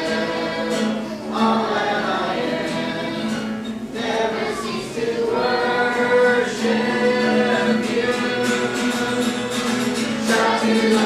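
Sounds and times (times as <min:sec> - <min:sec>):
youth choir singing: 0:00.0 - 0:11.0.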